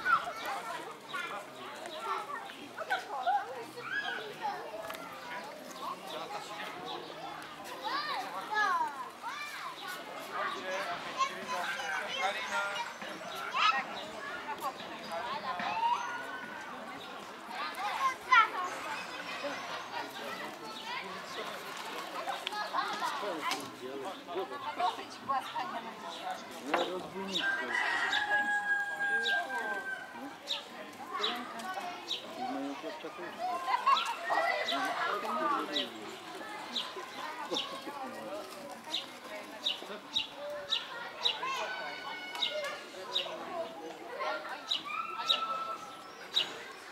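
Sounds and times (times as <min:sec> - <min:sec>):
children chattering excitedly: 0:00.0 - 0:46.9
voices: 0:00.0 - 0:46.9
children shrieking: 0:44.6 - 0:46.0.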